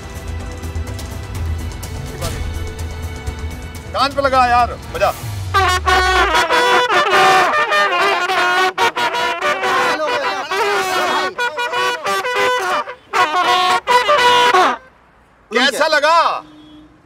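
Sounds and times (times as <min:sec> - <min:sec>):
trumpets playing held notes: 0:05.1 - 0:14.9.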